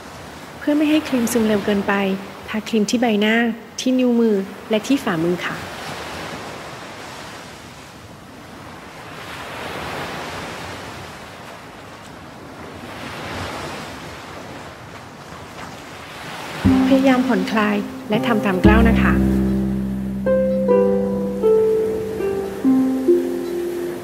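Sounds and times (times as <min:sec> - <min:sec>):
ocean waves washing in: 0:15.8 - 0:24.0.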